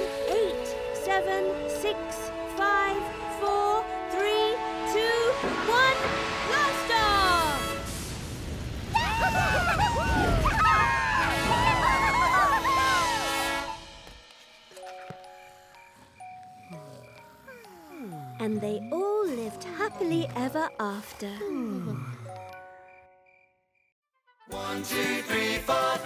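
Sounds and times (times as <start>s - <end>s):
high voices cheering and whooping: 8.9s - 13.8s
cartoon music: 11.2s - 14.0s.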